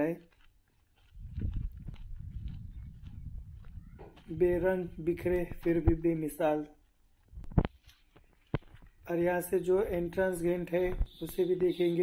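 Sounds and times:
wind buffeting microphone: 1.0 - 6.3, 7.2 - 7.8.

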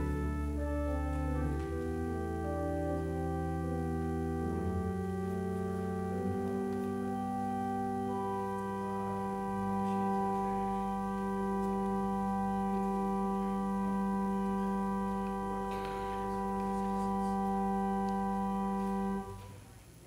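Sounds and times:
church organ chord: 0.0 - 19.6.

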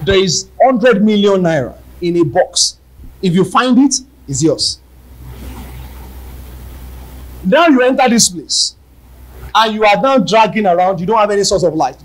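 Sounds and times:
faint rumbling: 0.0 - 12.0
steady low hum: 0.0 - 12.0.

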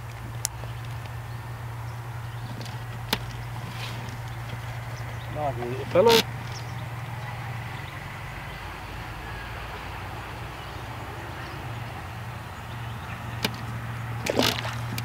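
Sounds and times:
low outdoor hum: 0.0 - 15.0.

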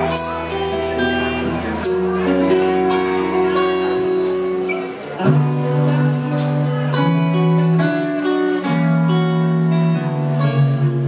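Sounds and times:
electric guitar: 0.0 - 11.0
live band playing: 0.0 - 11.0.

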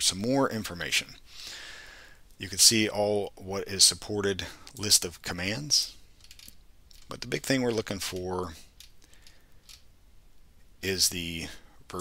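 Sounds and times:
man talking: 0.0 - 1.2, 2.4 - 6.0, 7.0 - 8.7, 10.8 - 12.0.

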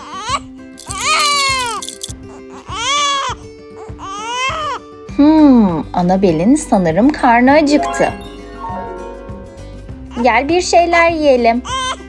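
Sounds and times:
light background music: 0.1 - 12.0.

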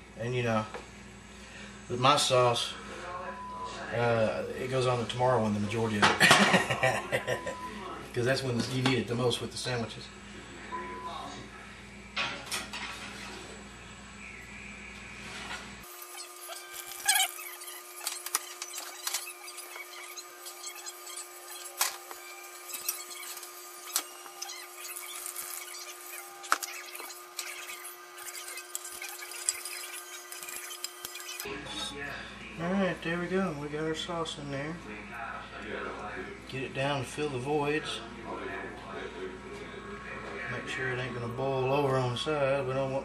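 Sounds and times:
steady hum: 0.0 - 43.0.

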